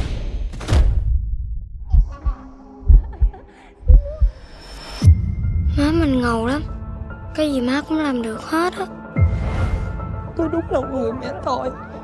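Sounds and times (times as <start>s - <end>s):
heartbeat double thuds: 0.8s - 4.5s.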